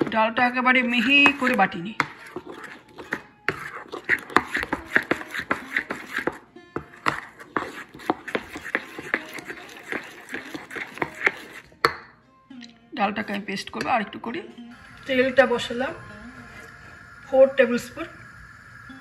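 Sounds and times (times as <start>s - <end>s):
spoon squelching in batter: 0.0s - 11.9s.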